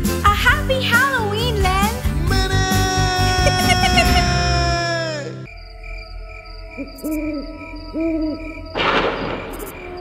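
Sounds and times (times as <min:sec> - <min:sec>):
spooky music drone: 0:03.0 - 0:08.8
owl hooting: 0:06.6 - 0:08.8.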